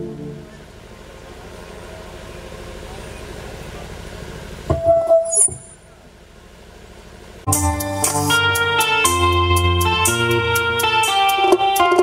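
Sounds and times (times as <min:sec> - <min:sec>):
low hum from pa system: 0:00.0 - 0:07.5
ringing tone: 0:04.9 - 0:05.9.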